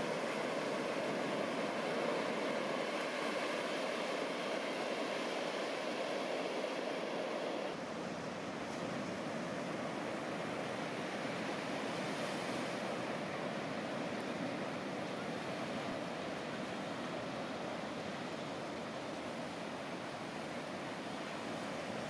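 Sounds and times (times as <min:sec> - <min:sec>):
ocean surf washing on beach: 0:00.0 - 0:22.0.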